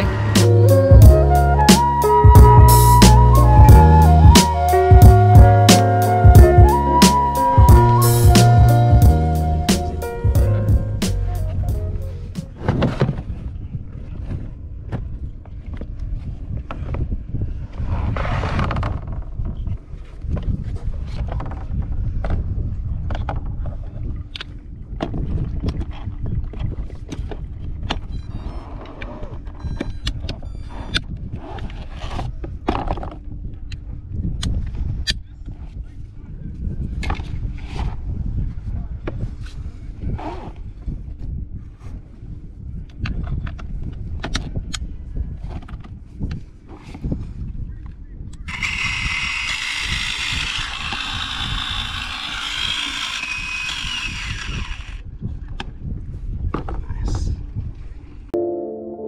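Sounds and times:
wind buffeting microphone: 0:00.0 - 0:58.4.

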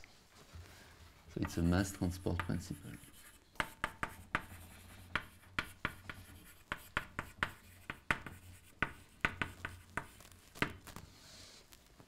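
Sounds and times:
chalk tapping and scratching: 0:01.4 - 0:11.0.

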